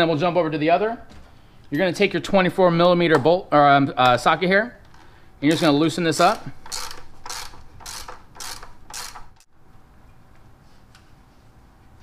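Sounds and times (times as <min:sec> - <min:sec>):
ratchet wrench clicking: 0:06.6 - 0:09.5.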